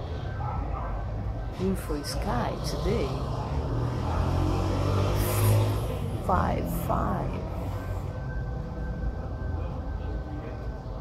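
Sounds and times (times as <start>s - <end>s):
vehicle engine drone: 0.0s - 11.0s.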